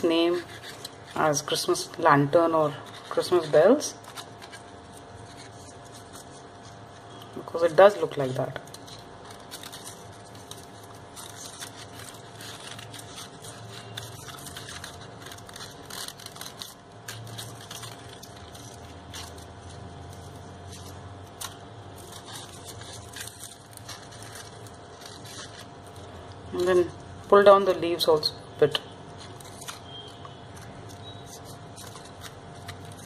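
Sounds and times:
crepe paper rustling and crinkling: 0.0 - 33.0.

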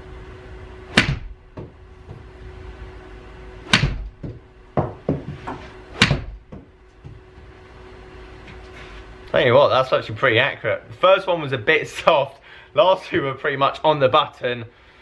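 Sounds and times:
faint steady hum: 0.0 - 15.0
golf club smacking ball: 0.9 - 2.2, 3.6 - 6.6
ball hitting impact screen: 0.9 - 2.3, 3.6 - 6.8.

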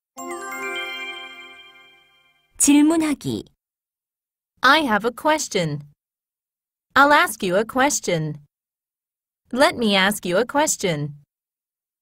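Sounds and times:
bell-like chime: 0.1 - 2.5.

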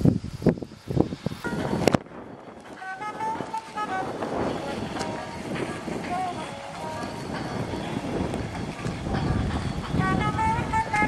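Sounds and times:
faint held musical notes: 0.0 - 11.0
outdoor noise: 0.0 - 11.0
wind buffeting microphone: 0.0 - 11.0.

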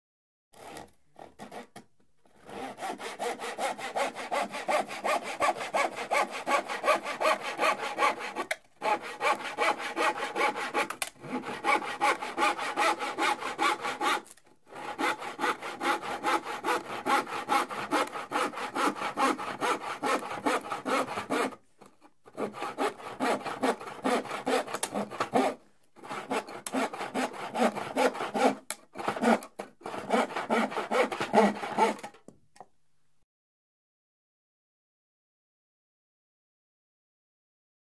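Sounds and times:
hand saw cutting plywood: 0.6 - 32.3.

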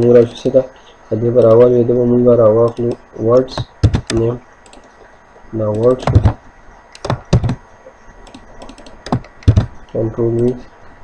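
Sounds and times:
typing on computer keyboard: 2.6 - 4.9, 5.7 - 6.4, 7.0 - 7.6, 8.2 - 9.8.

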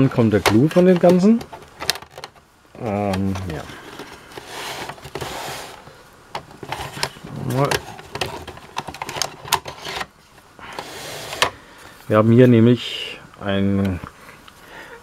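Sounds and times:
plastic rubbing and scraping: 0.0 - 2.4, 3.0 - 11.6.

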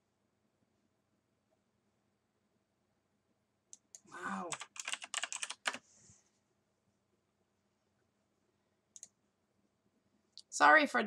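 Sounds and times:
keyboard typing: 3.7 - 5.9, 8.9 - 9.2.

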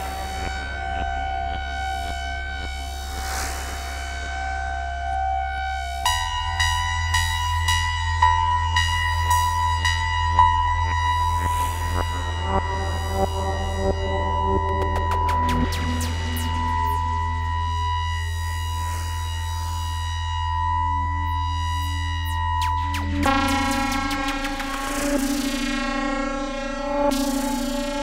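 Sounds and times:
sustained high synthesizer tone: 0.0 - 28.0
synthesizer low drone: 0.0 - 28.0
repeating synthesizer note: 5.8 - 18.5.

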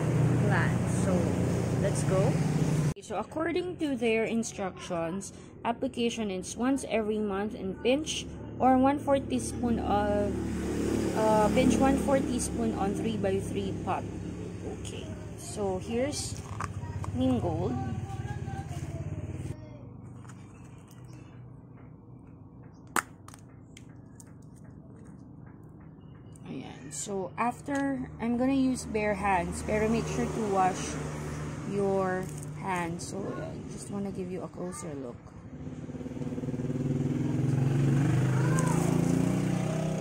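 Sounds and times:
engine running: 0.0 - 4.0, 8.0 - 40.0.

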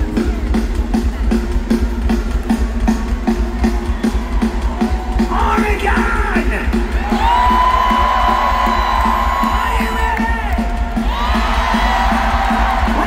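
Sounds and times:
punk rock band playing: 0.0 - 13.0
crowd whooping and cheering: 3.1 - 13.0.

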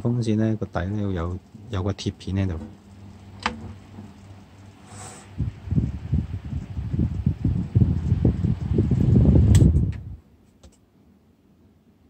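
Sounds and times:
desk fan air rumble: 0.0 - 10.8
sharp click: 9.5 - 10.8.

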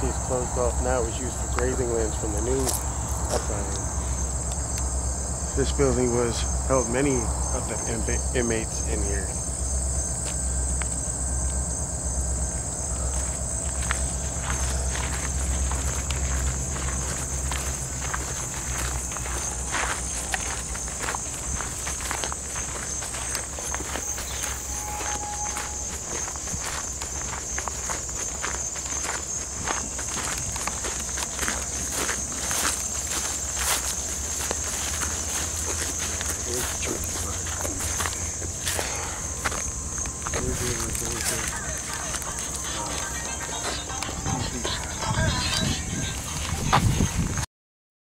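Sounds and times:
footsteps on gravel and grass: 0.0 - 47.4
insects trilling: 0.0 - 47.4.

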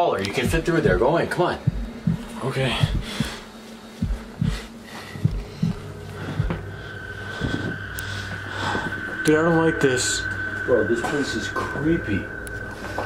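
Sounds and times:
steady high tone: 0.4 - 13.0
person breathing: 2.6 - 9.2.

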